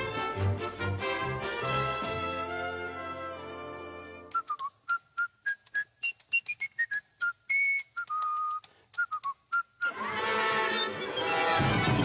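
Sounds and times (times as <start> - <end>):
orchestral music: 0.0 - 4.3, 9.9 - 12.0
whistled tune: 4.2 - 12.0.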